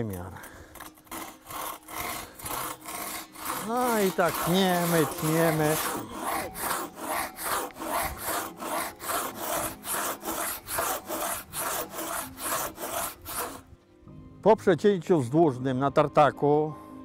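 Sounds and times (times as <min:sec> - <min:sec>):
hand saw cutting wood: 0:00.0 - 0:13.7.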